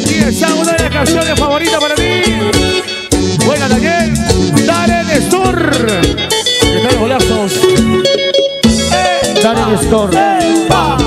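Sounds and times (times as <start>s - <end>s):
bass: 0.0s - 11.0s
lead guitar bending notes: 0.0s - 11.0s
steady drum beat: 0.0s - 11.0s.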